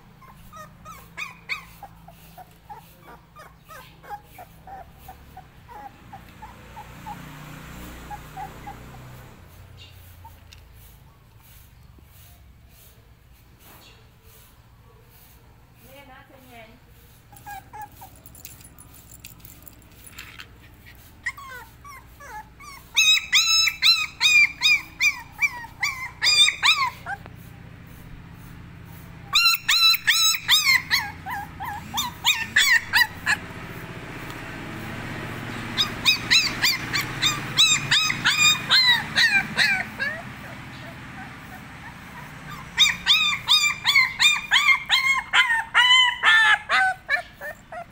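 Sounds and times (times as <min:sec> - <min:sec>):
puppy whimpering: 0:00.0 - 0:10.5, 0:17.2 - 0:18.6, 0:20.6 - 0:27.6, 0:29.2 - 0:33.5, 0:35.7 - 0:47.9.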